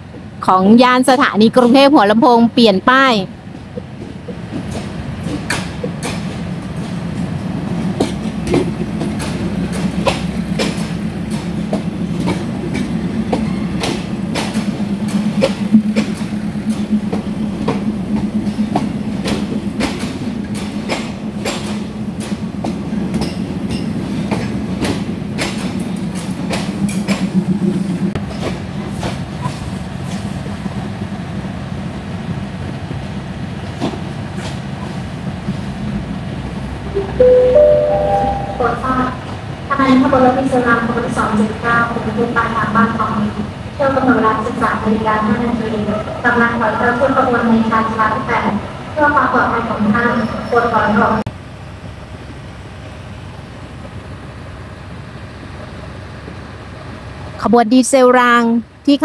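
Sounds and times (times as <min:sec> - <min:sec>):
low train hum: 0:00.0 - 0:59.0
train wheels clicking over rail joints: 0:03.5 - 0:30.6.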